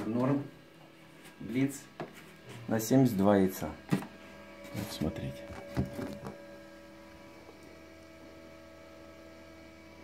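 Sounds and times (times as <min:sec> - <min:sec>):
incubator electrical hum: 0:00.0 - 0:10.0.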